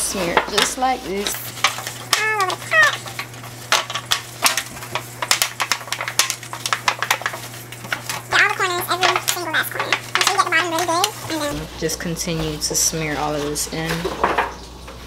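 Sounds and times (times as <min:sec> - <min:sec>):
aluminium foil pan crinkling: 0:00.2 - 0:11.6.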